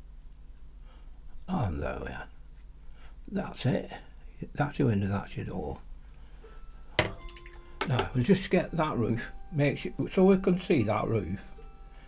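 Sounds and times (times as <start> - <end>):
man's voice: 7.8 - 11.5.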